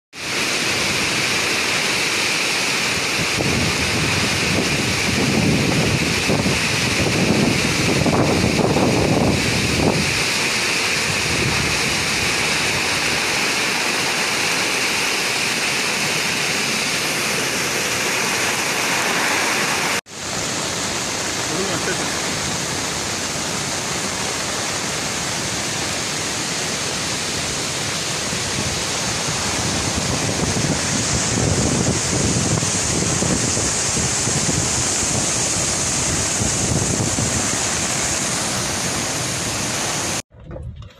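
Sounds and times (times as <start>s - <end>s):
floodwater roaring over spillway: 0.2s - 40.2s.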